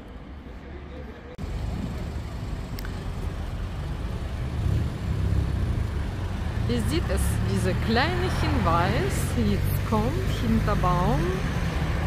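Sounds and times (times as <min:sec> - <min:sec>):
cars going by: 0:01.4 - 0:12.0.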